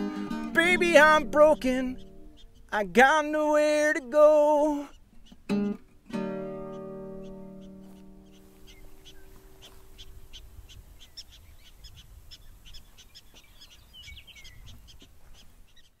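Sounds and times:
guitar chord ringing: 0.0s - 10.0s
prairie dogs chirping: 0.0s - 16.0s.

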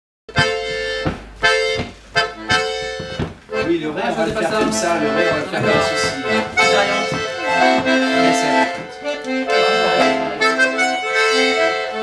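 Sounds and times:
button accordion chords: 0.3s - 12.0s.

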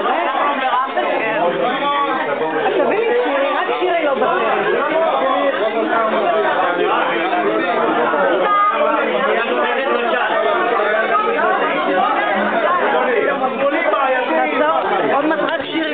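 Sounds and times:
crowd chatter: 0.0s - 15.9s.

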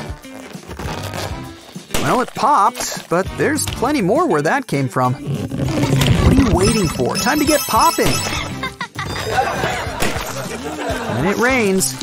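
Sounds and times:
background music: 0.0s - 12.0s
water balloon bursting: 1.9s - 2.4s.

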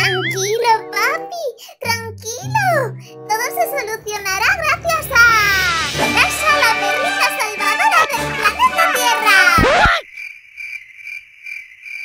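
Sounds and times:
high-pitched voice chattering: 0.0s - 2.9s, 7.2s - 10.0s
background music: 0.0s - 9.8s.

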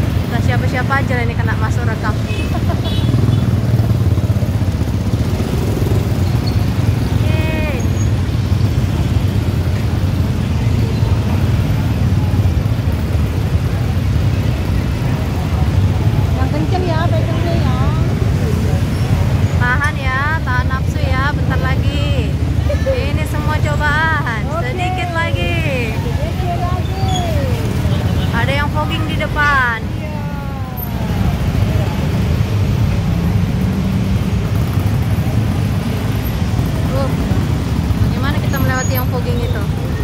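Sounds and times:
people's voices: 0.0s - 40.0s
scooter engines droning: 0.0s - 40.0s.

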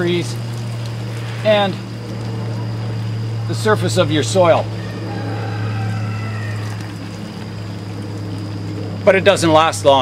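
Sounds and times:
steady low hum: 0.0s - 10.0s
watering can spraying water: 0.0s - 10.0s.

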